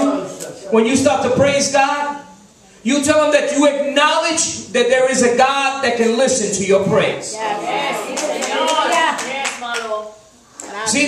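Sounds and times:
hand clapping: 0:08.1 - 0:10.0.

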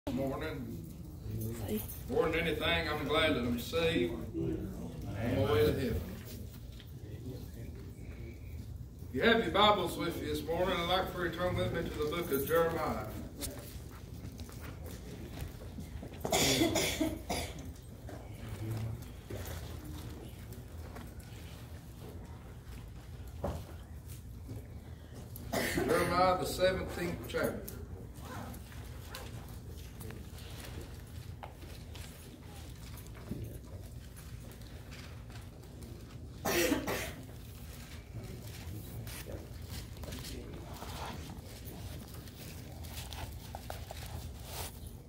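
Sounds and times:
low room hum: 0:00.1 - 0:45.0
person coughing: 0:16.2 - 0:17.7, 0:25.5 - 0:26.1, 0:36.4 - 0:37.3.

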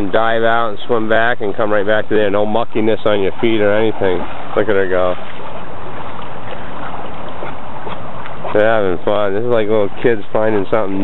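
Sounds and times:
dog paddling splashes: 0:00.0 - 0:11.0
flowing river water: 0:00.0 - 0:11.0.

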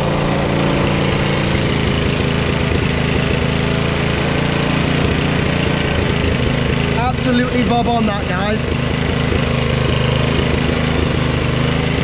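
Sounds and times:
tiller engine running: 0:00.0 - 0:12.0.

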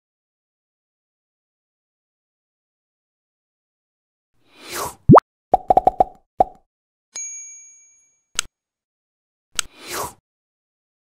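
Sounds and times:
rising pop: 0:05.1 - 0:06.6.

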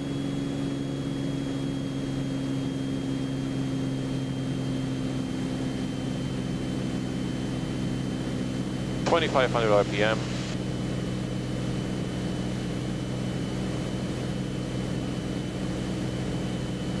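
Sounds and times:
propeller engine droning in cabin: 0:00.0 - 0:17.0.

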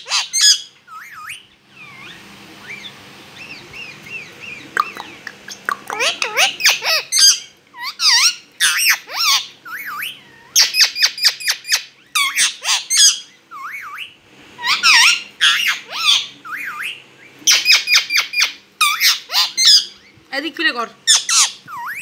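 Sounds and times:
parakeet harsh squawks: 0:00.0 - 0:20.1, 0:21.0 - 0:22.0
parakeet wavering whistles: 0:00.0 - 0:20.2, 0:21.1 - 0:22.0.

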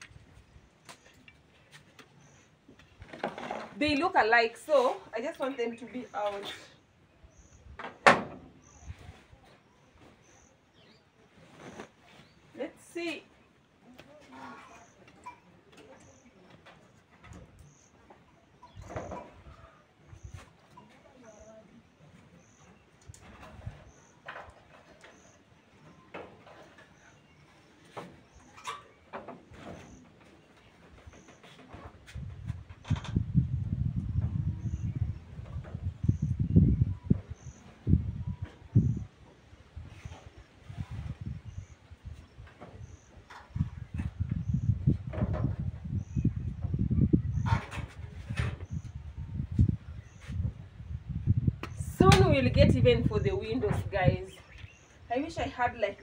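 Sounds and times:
fabric rustling: 0:11.4 - 0:12.8
loud low rumbling gusts: 0:32.2 - 0:39.1, 0:43.5 - 0:47.6, 0:48.2 - 0:54.2.

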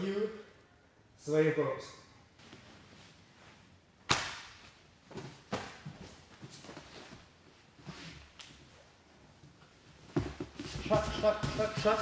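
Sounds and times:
sharp slap on mat: 0:04.1 - 0:04.6
bodies thumping on mat: 0:10.1 - 0:12.0.

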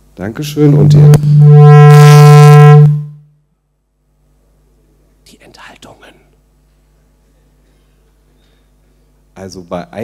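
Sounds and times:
steady low hum: 0:00.0 - 0:10.0
person whispering: 0:05.2 - 0:06.4.

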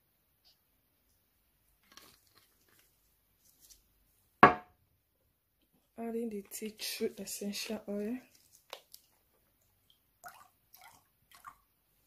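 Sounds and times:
glass bottle clinking on table: 0:04.4 - 0:04.7.

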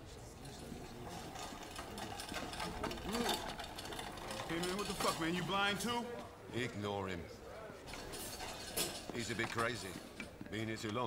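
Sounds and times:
rapid rattling clatter: 0:01.1 - 0:05.6.

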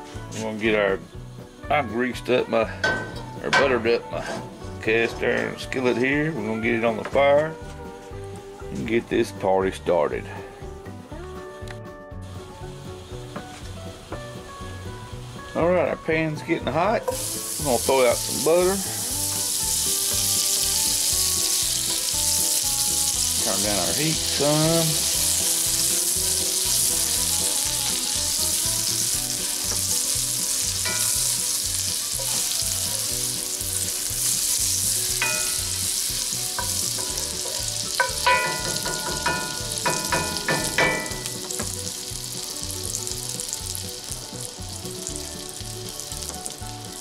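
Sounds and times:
butter sizzling in a skillet: 0:12.3 - 0:47.0.

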